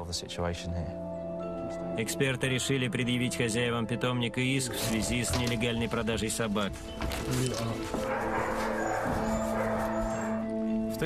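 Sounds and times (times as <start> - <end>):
background music with held notes: 0.0 - 11.0
puppies yapping and whining: 7.5 - 10.6.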